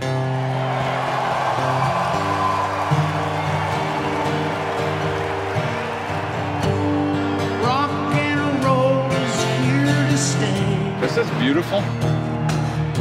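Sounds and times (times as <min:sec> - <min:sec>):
guitar chords: 0:00.0 - 0:13.0.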